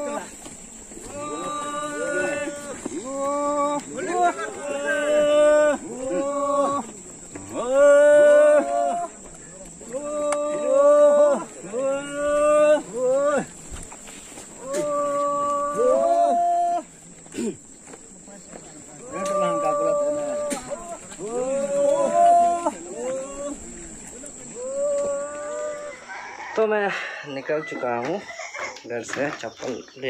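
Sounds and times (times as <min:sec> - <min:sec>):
men hollering calls: 0:00.0 - 0:28.8
rooster crowing: 0:24.9 - 0:28.8.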